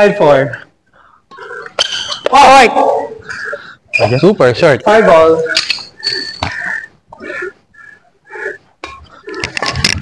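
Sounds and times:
shoes squeaking on court: 0:03.9 - 0:04.3, 0:05.5 - 0:06.9.

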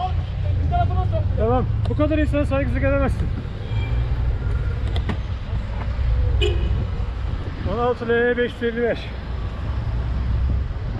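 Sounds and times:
street traffic: 0:00.0 - 0:10.9
wind buffeting microphone: 0:04.3 - 0:08.1, 0:09.5 - 0:10.9.

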